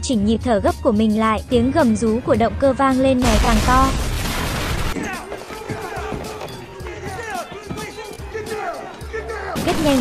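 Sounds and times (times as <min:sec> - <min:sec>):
voices: 0:05.0 - 0:10.0
man narrating: 0:06.8 - 0:09.6.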